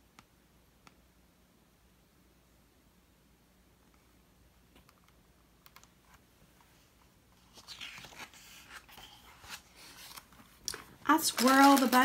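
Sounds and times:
paper rustling: 6.8 - 12.0.

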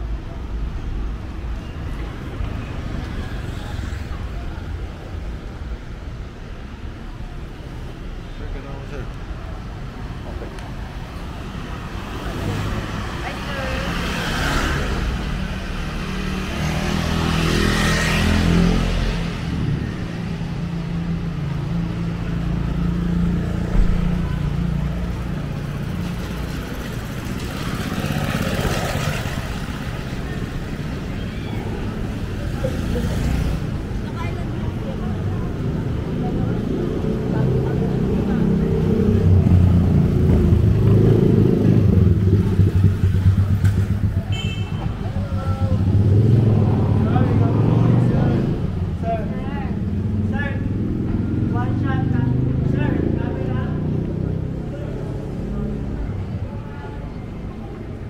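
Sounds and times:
car engines passing: 0.0 - 58.0
motorcycle engines passing: 11.0 - 58.0
people's voices: 21.7 - 58.0.

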